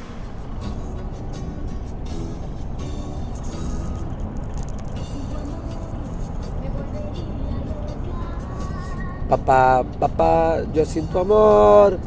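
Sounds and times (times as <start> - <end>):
music with singing voice: 0.0 - 12.0
road noise inside moving vehicle: 0.0 - 12.0.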